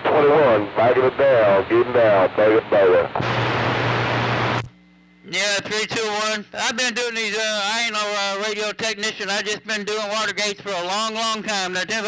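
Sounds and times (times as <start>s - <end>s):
low hum from speaker: 0.0s - 12.0s
radio static hiss: 0.0s - 12.0s.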